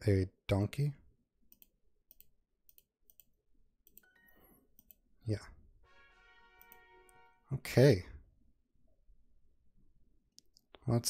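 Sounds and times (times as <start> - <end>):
computer mouse clicking: 1.5 - 4.1, 4.7 - 5.0
soft chime: 4.0 - 4.6.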